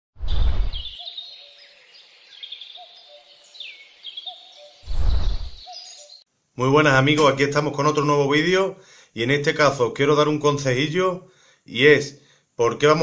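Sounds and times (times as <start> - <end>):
loud rushing noise bursts: 0.2 - 0.9, 4.9 - 5.6
lower short bird call: 0.2 - 1.1
small birds chirping: 0.2 - 6.3.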